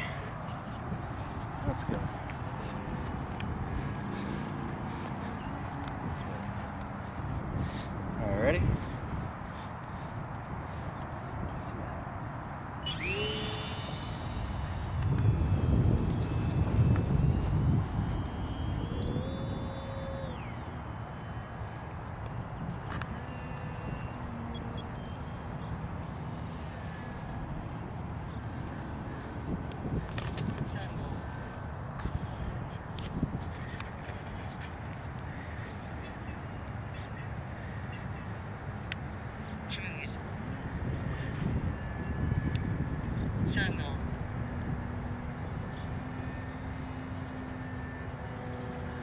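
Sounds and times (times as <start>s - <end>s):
electric motor and propeller whine: 12.8s - 20.8s, 44.2s - 49.0s.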